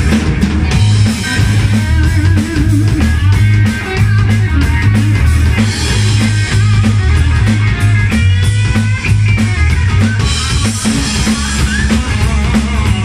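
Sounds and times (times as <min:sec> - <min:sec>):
drum kit: 0:00.0 - 0:13.0
electric bass line: 0:00.0 - 0:13.0
electric guitar bending notes: 0:00.0 - 0:13.0.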